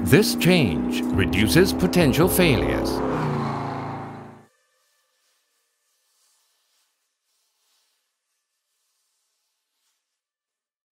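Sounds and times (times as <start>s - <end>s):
car engine note: 0.0s - 4.5s.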